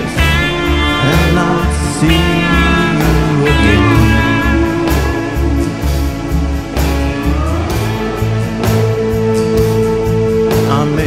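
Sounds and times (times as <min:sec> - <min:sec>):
country-rock band instrumental: 0:00.0 - 0:11.0
guitar note sliding upward: 0:00.9 - 0:07.1.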